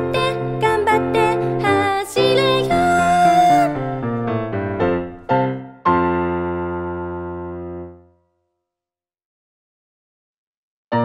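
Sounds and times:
piano chord: 0.0s - 8.2s.

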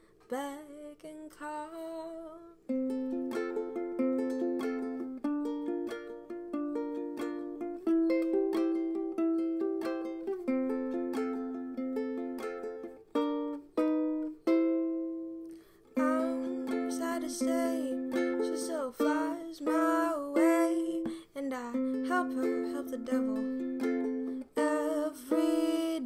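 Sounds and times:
ukulele picked notes: 2.7s - 26.0s.

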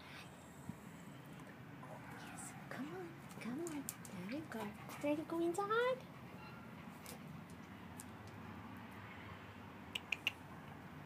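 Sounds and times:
dog claws clicking on concrete: 3.2s - 5.7s, 7.0s - 8.4s, 10.0s - 10.8s.

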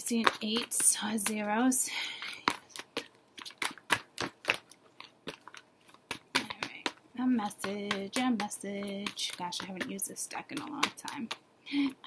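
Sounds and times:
cards being shuffled: 2.2s - 11.3s.

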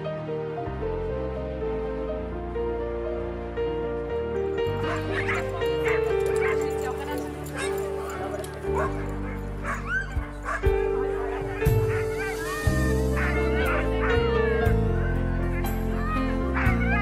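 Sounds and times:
background music: 0.0s - 17.0s
dogs barking: 4.6s - 17.0s.

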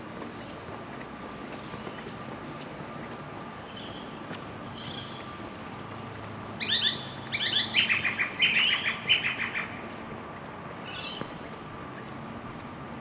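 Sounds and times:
low street hum: 0.0s - 13.0s.

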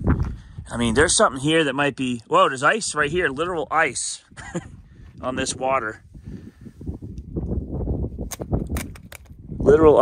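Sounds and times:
wind buffeting microphone: 0.0s - 1.7s, 2.6s - 10.0s.

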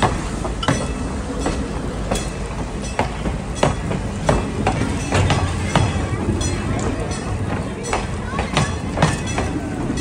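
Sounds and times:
low train rumble: 0.0s - 10.0s
train wheels clacking over rail joints: 0.0s - 10.0s.

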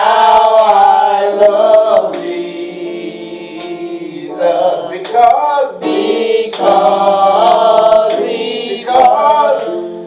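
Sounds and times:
unaccompanied voices singing: 0.0s - 10.0s.

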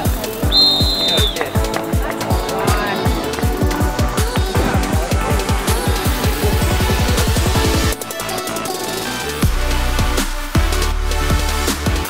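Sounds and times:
electronic music with booming beat: 0.0s - 12.0s
referee's whistle blast: 0.4s - 1.7s.

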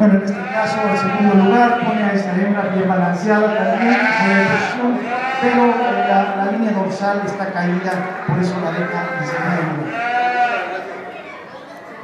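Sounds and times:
sheep bleating: 0.1s - 6.6s, 7.2s - 10.9s.

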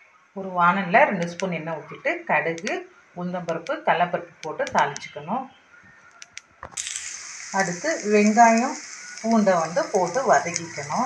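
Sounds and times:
shallots sizzling in hot oil: 6.8s - 11.0s.

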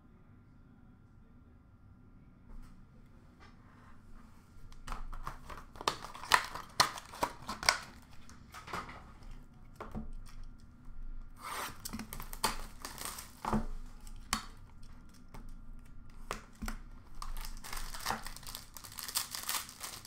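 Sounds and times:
plastic wrapping tearing and crinkling: 4.7s - 10.6s, 11.3s - 20.0s.

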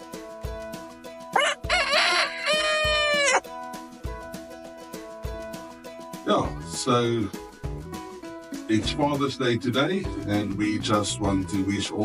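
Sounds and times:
background music with steady beat: 0.0s - 12.0s
rooster crowing: 1.4s - 3.4s.

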